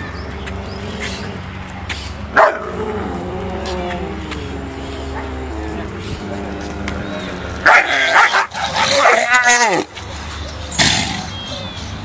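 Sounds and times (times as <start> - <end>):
dog barking: 2.4 - 2.8, 7.6 - 9.2.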